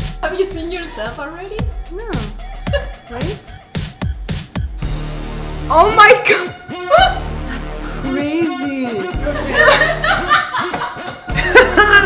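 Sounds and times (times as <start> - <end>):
background music: 0.0 - 12.0
man laughing: 2.6 - 3.1, 9.1 - 12.0
woman laughing: 2.6 - 3.4, 6.2 - 12.0.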